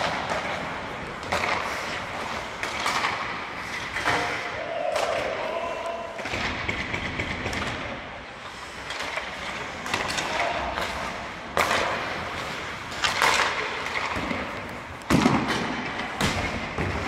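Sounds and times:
skate blades scraping on ice: 0.0 - 4.5.

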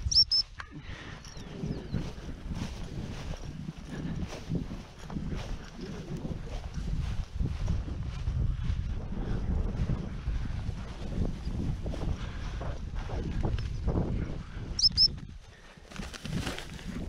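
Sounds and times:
short high-pitched chirps: 0.0 - 0.5, 14.8 - 15.2
wind buffeting microphone: 0.0 - 17.0
footsteps through dry grass: 0.4 - 17.0.

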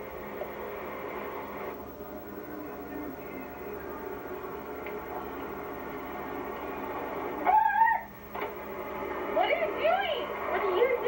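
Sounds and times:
tape hiss: 0.0 - 11.0
girl squealing: 7.5 - 8.1.

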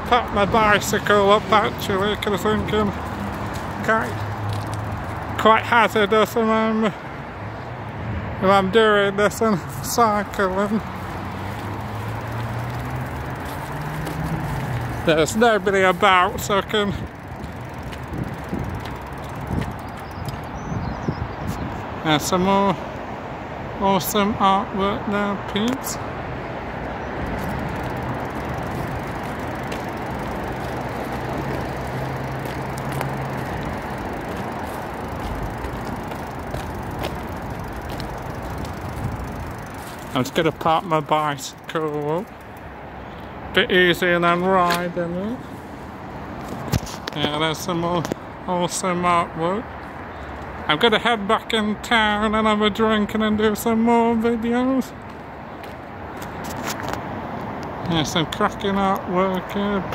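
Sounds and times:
road traffic noise: 0.0 - 59.9
vehicle engine hum: 0.0 - 59.9.

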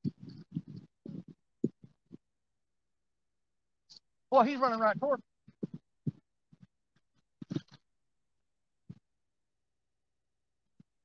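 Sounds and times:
man speaking: 4.3 - 5.2.

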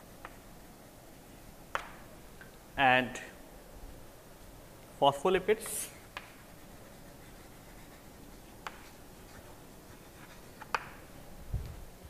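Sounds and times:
pen tapping: 6.1 - 6.4, 8.6 - 9.0, 10.2 - 11.0
pen writing on surface: 6.1 - 11.0.

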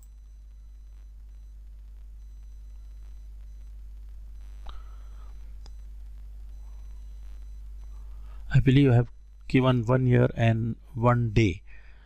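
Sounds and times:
thin high whine: 0.0 - 11.2
low electrical hum: 0.0 - 12.0.

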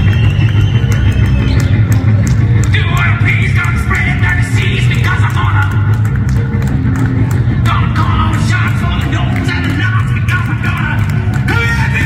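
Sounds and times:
heavy bass: 0.0 - 12.0.

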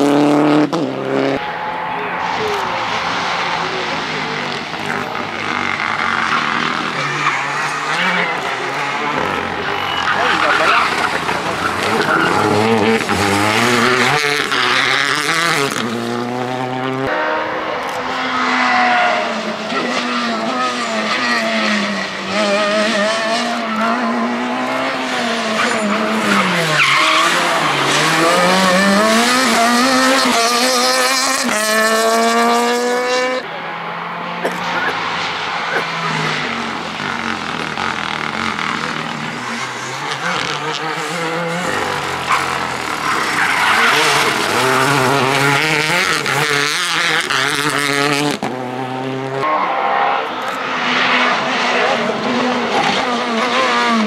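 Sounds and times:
rally car engines passing: 0.0 - 54.0.

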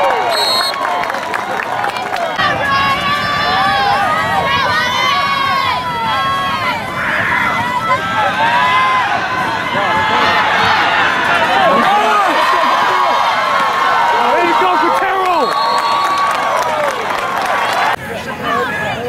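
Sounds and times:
crowd shouting and cheering: 0.0 - 19.0.

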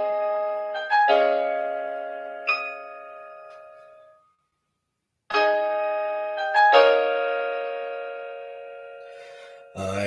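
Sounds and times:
held piano chord: 0.0 - 4.4, 5.3 - 10.0.

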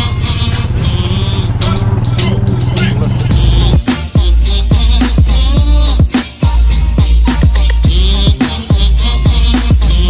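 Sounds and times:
quad bike engine running: 0.0 - 6.1
background music: 0.0 - 10.0
bass-heavy music with kick drum: 0.0 - 10.0.

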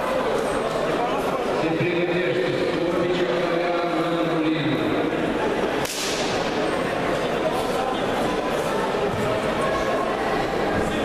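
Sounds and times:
crowd voices echoing in hall: 0.0 - 11.0
sharp crack: 5.8 - 6.6.

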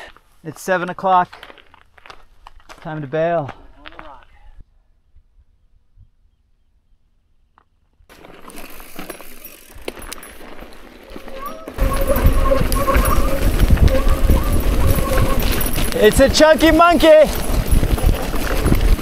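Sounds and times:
bike rattling over trail: 8.1 - 19.0
wind rumble on microphone: 11.8 - 19.0.

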